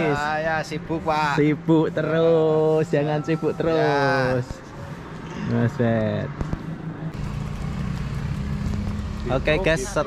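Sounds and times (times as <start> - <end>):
vehicle engine running: 7.1 - 10.0.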